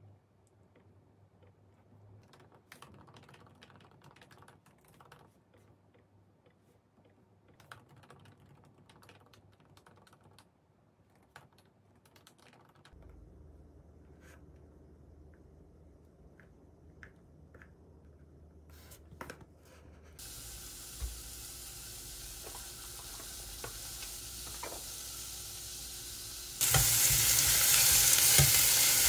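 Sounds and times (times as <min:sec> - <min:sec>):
laptop keyboard typing: 0:02.2 - 0:05.4, 0:07.5 - 0:10.5, 0:11.1 - 0:13.0.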